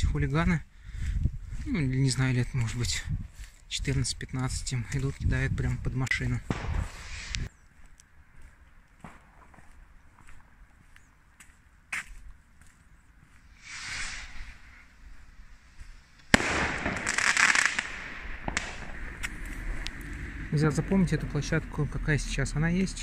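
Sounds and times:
firework bangs: 0:06.4 - 0:07.4, 0:16.3 - 0:19.3
firecrackers crackling: 0:06.4 - 0:07.5, 0:13.5 - 0:14.9, 0:15.9 - 0:20.2
firework hiss: 0:06.5 - 0:07.5, 0:13.5 - 0:14.9, 0:16.0 - 0:19.8.

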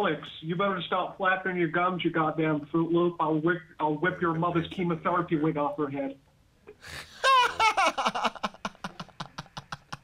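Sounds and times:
person laughing: 0:06.8 - 0:10.0.

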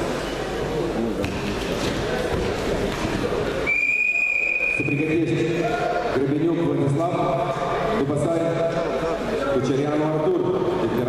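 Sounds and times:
hall crowd noise: 0:00.0 - 0:11.0
referee's whistle: 0:03.6 - 0:05.2.

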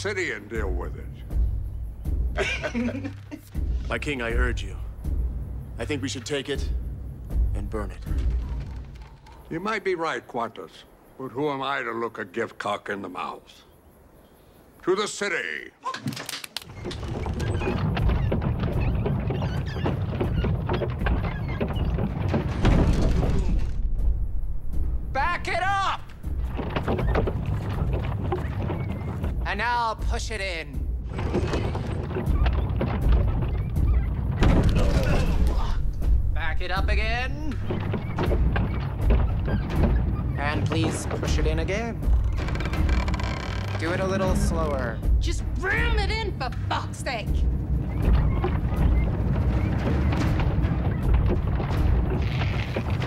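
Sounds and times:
wooden wheels rumbling and creaking: 0:00.0 - 0:10.1, 0:15.8 - 0:53.0
wooden knocks and thuds: 0:01.3 - 0:09.5, 0:16.0 - 0:53.0.

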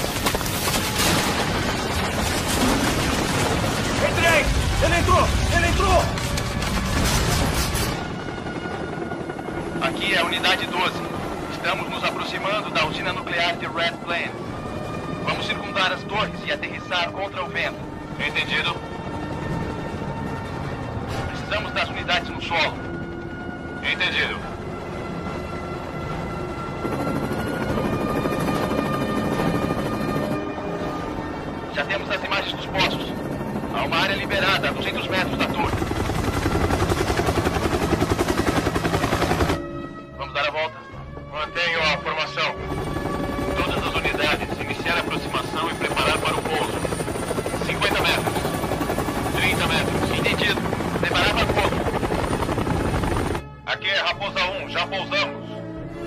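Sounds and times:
helicopter rotors chopping: 0:00.0 - 0:39.6, 0:42.1 - 0:53.5
film score with held notes: 0:00.0 - 0:56.0.

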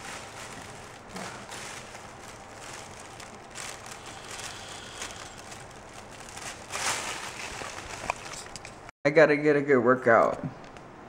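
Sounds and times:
person inhaling: 0:03.9 - 0:05.6.

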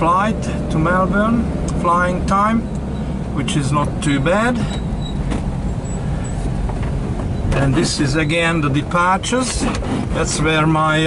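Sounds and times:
road noise: 0:00.0 - 0:11.0
van engine rumble: 0:00.0 - 0:11.0.

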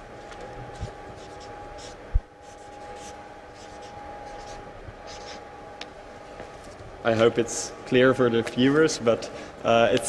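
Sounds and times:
marker squeaking on paper: 0:00.8 - 0:05.4.

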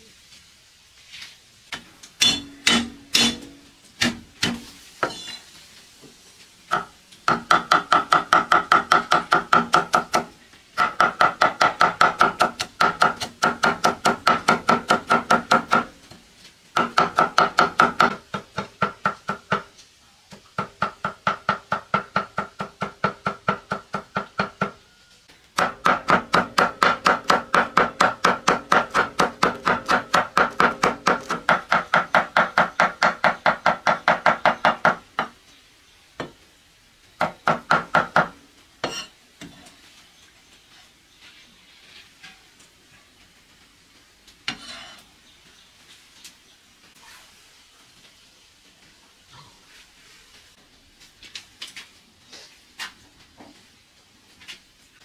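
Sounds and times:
cleaver chopping on wooden block: 0:02.2 - 0:04.6.

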